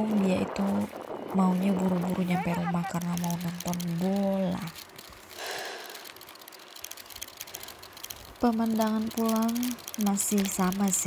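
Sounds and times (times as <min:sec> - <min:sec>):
bicycle clicking and rattling: 0:00.0 - 0:11.0.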